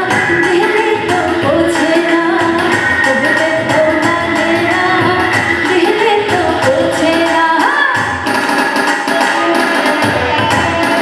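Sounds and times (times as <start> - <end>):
woman singing with live band: 0.0 - 8.4.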